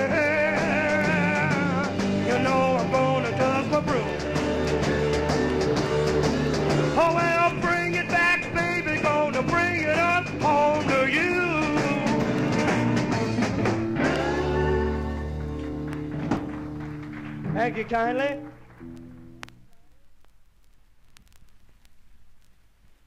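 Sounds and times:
wavering sung or slide guitar line: 0.0 - 15.4
live blues-rock band playing: 0.0 - 17.6.

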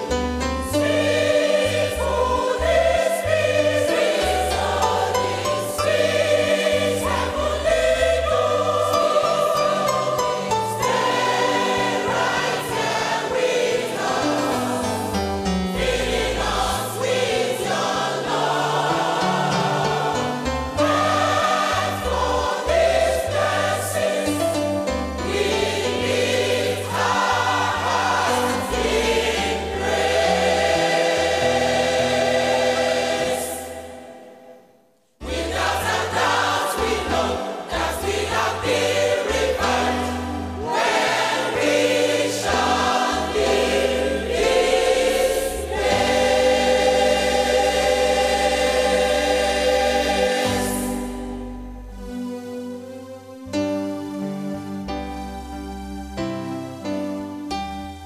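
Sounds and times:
choir singing gospel music: 0.0 - 52.1.

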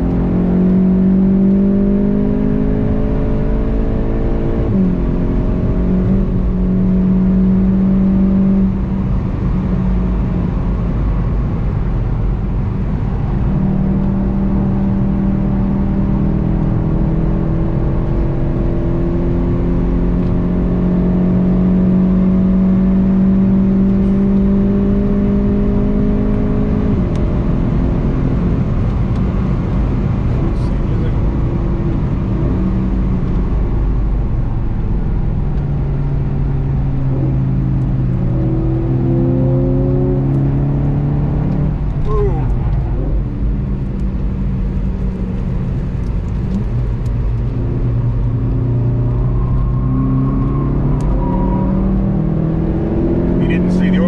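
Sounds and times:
car engine accelerating: 0.0 - 54.0
tyre and road noise: 22.7 - 54.0.

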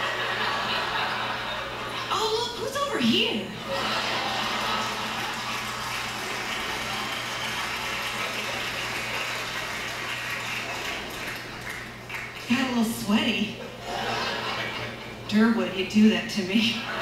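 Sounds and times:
audience applauding: 3.6 - 12.8.

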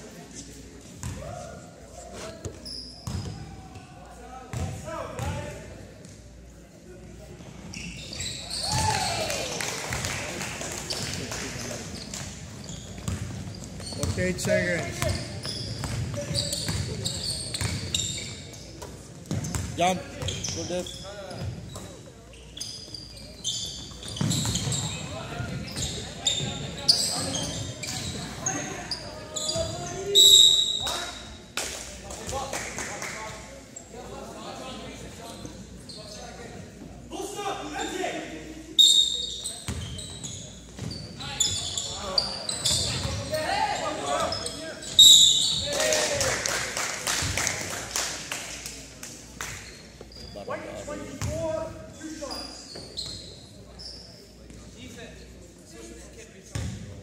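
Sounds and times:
sneakers squeaking on hardwood: 2.2 - 3.6, 7.6 - 9.1, 11.8 - 31.2, 38.8 - 45.7, 49.5 - 54.6, 56.5 - 56.8
basketball bouncing: 13.0 - 15.2.

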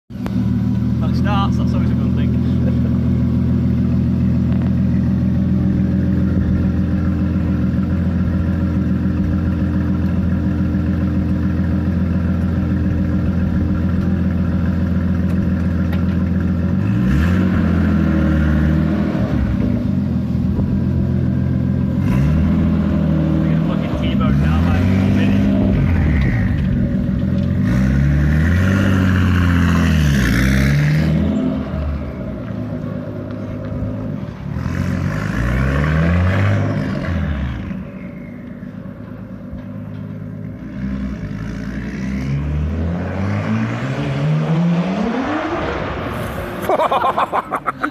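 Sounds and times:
car engine idling and revving: 0.1 - 47.9.

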